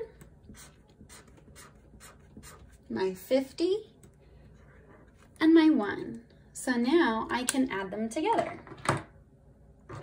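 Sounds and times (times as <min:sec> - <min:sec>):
marker scratching on paper: 0:00.2 - 0:02.9.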